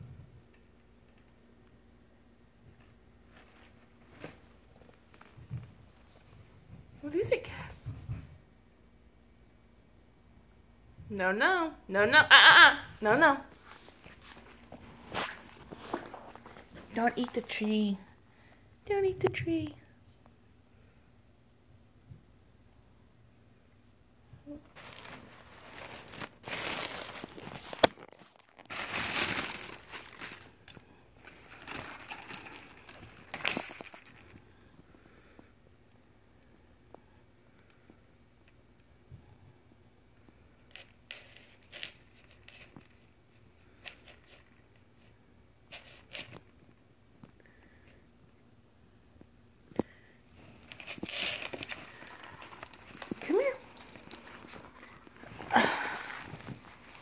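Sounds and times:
tissue paper crinkling: 24.6s - 34.3s, 50.4s - 57.0s.

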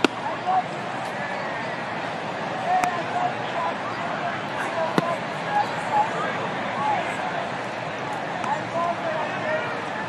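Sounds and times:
crowd murmuring: 0.0s - 10.0s
voices calling out: 0.0s - 10.0s
ball popping into mitt: 4.9s - 5.2s.

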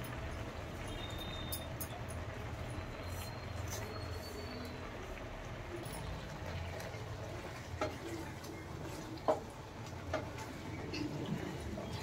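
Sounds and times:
spatula stirring bubbling food: 2.2s - 12.0s.

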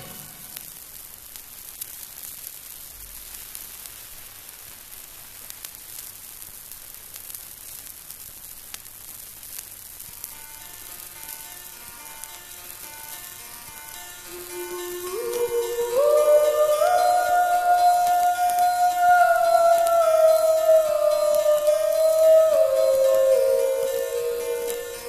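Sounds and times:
record surface hiss: 0.0s - 25.0s
faint musical notes: 10.6s - 25.0s.

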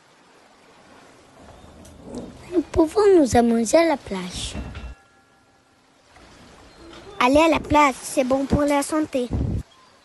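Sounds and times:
faint steady background hiss: 0.0s - 10.0s
child speaking: 2.4s - 4.6s, 6.9s - 9.6s.

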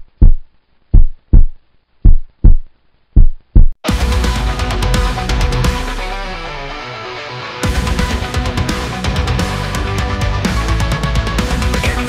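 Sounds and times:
paired low thumps: 0.0s - 4.0s
metal band with distorted guitar: 3.8s - 12.0s.

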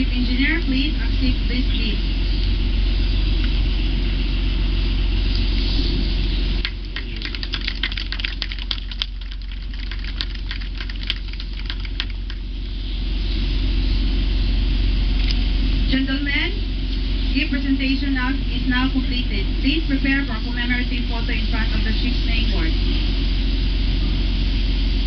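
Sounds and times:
steady low hum: 0.0s - 25.0s
group clapping hands: 6.6s - 12.4s.

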